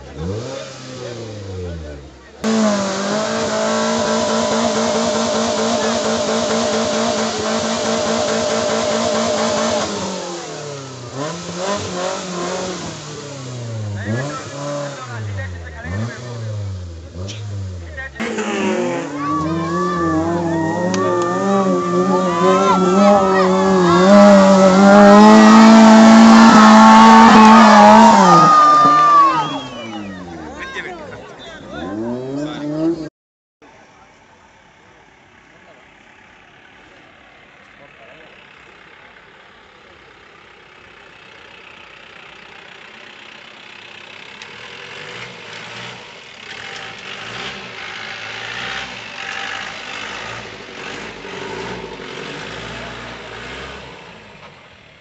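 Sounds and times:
jeep engine revving: 0.0s - 33.1s, 35.6s - 55.0s.

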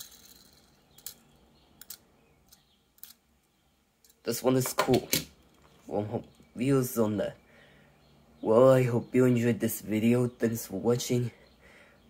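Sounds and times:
toy car clicking in fingers: 0.0s - 1.2s, 1.8s - 3.2s.

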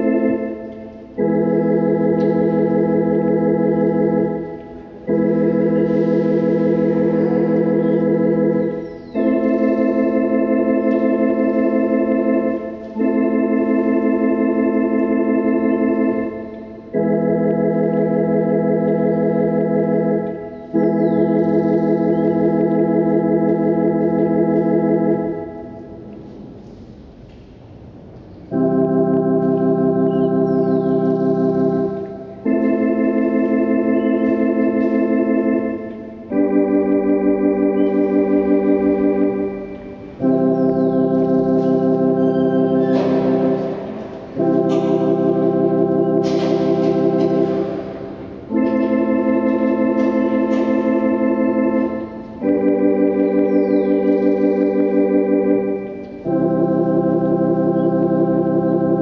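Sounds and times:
electronic organ chords with tremolo: 0.0s - 59.0s.

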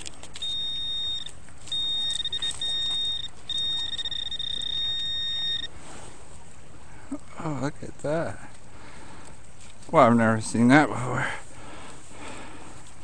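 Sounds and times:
metal detector probe high tone: 0.4s - 5.7s.

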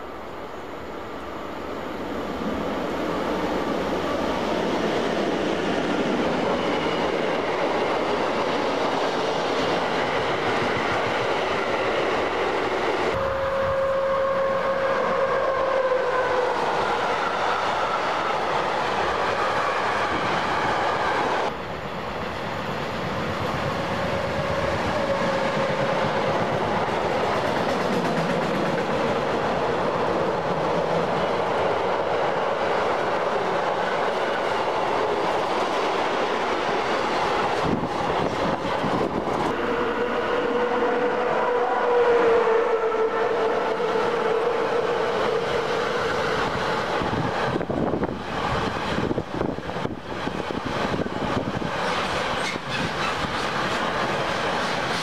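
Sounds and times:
held train horn tone: 13.1s - 18.5s, 39.4s - 48.0s
freight train wheels clattering: 24.6s - 29.7s.

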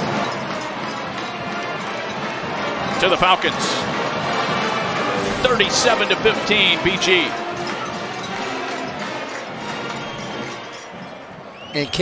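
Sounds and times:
marching band brass playing: 0.0s - 11.4s.

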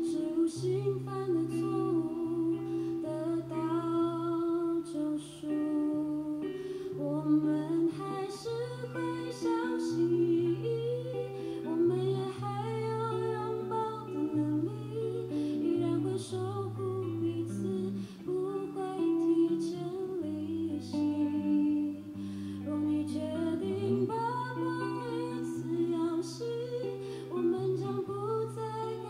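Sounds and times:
guitar: 0.0s - 29.0s
woman singing: 0.0s - 29.0s.

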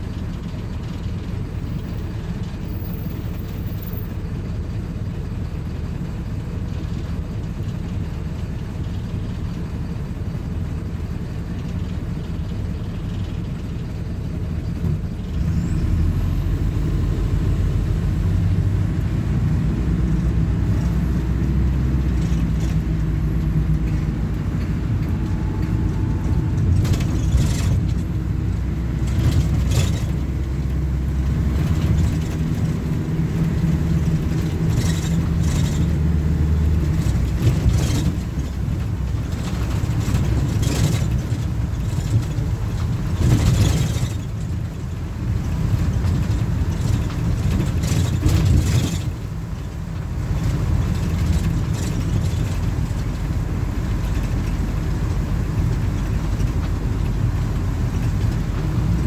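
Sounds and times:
bus diesel engine: 0.0s - 59.0s
knocks and rattles: 22.0s - 30.6s, 36.8s - 44.8s, 45.4s - 53.4s.

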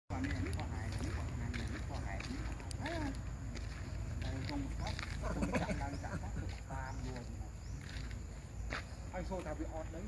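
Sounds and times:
people talking: 0.1s - 8.1s, 9.1s - 10.0s
steady low rumble: 0.1s - 9.3s.

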